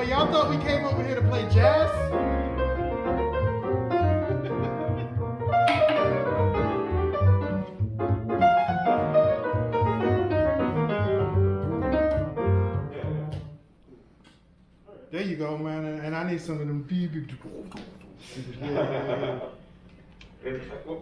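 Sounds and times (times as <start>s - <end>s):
double bass low notes: 0.0s - 13.6s
grand piano playing jazz: 0.0s - 13.6s.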